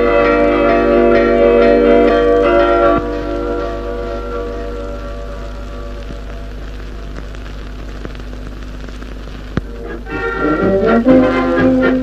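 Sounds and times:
brass band playing: 0:09.8 - 0:12.0.

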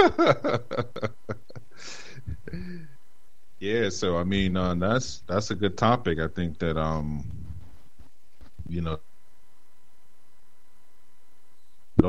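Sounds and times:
man laughing: 0:00.0 - 0:02.9.

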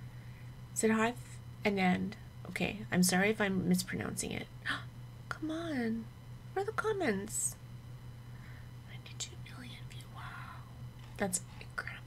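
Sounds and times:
low electrical hum: 0:00.0 - 0:12.0
woman whispering: 0:08.8 - 0:12.0.

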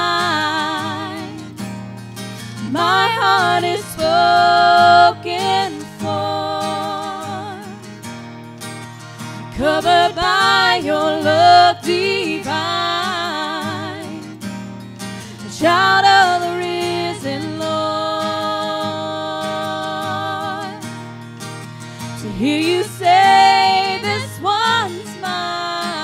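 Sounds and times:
women singing with vibrato: 0:00.0 - 0:01.7, 0:02.4 - 0:07.9, 0:09.2 - 0:14.5, 0:15.4 - 0:21.0, 0:22.0 - 0:26.0
strummed acoustic guitar: 0:00.0 - 0:26.0.

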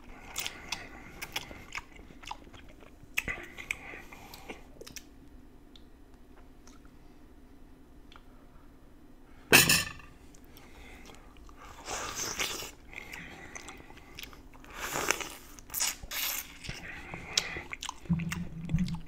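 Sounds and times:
wet chewing: 0:00.2 - 0:05.1, 0:10.4 - 0:19.0.

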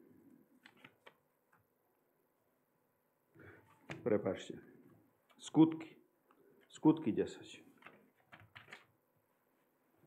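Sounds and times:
faint page clicks: 0:00.6 - 0:01.2.

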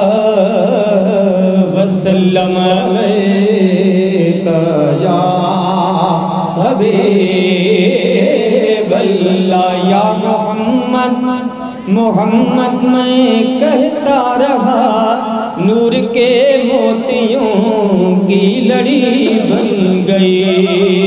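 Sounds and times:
men chanting devotional song: 0:00.0 - 0:21.0.

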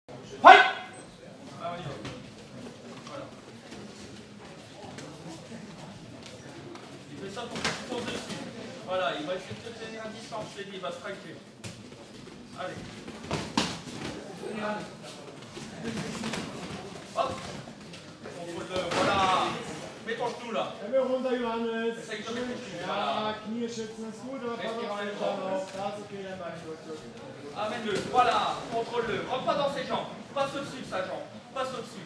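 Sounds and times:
loud shout: 0:00.4 - 0:00.9.

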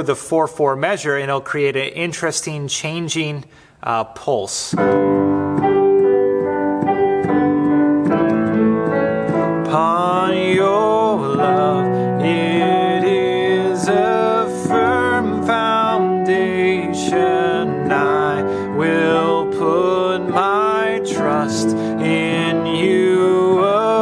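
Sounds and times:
arpeggiated piano chords: 0:04.8 - 0:24.0
man singing: 0:09.3 - 0:24.0.

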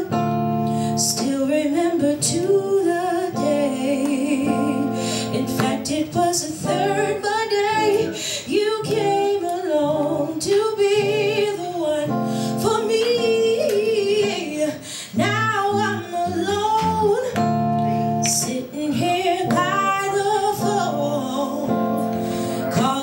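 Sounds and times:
acoustic guitar: 0:00.0 - 0:23.0
woman singing with vibrato: 0:00.0 - 0:23.0.

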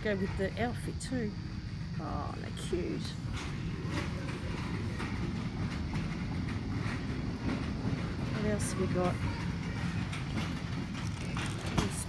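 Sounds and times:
woman speaking: 0:00.0 - 0:01.4, 0:02.0 - 0:03.2, 0:08.3 - 0:09.2
store background rumble: 0:00.0 - 0:12.0.

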